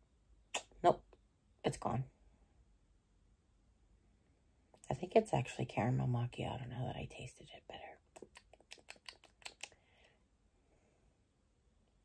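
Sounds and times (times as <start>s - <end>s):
faint quick clicks: 8.2s - 9.8s.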